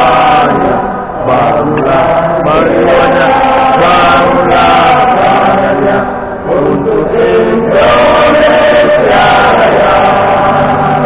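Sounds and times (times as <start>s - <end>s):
stadium crowd singing: 0.0s - 11.0s.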